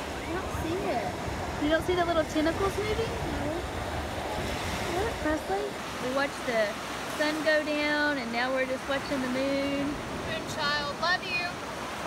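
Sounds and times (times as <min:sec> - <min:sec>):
beach surf rushing: 0:00.0 - 0:12.0
wind buffeting microphone: 0:00.0 - 0:12.0.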